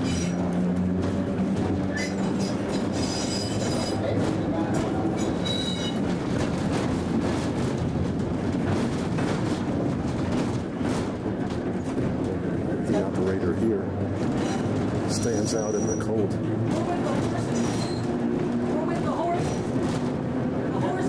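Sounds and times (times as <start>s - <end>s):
high wheel squeal: 0.0s - 0.5s, 1.9s - 4.2s, 5.1s - 6.1s, 14.3s - 16.4s, 17.4s - 18.3s
streetcar rumble: 0.0s - 21.0s
wheels clicking over rail joints: 0.0s - 21.0s.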